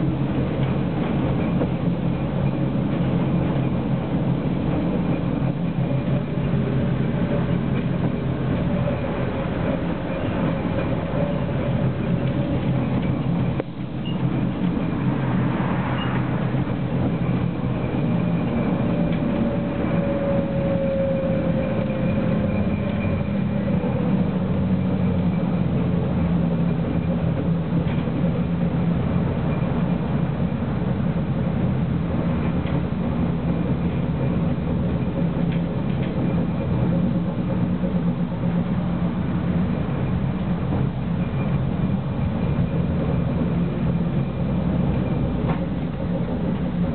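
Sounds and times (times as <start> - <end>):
faint whine: 0.0 - 46.9
tram motor hum: 0.0 - 46.9.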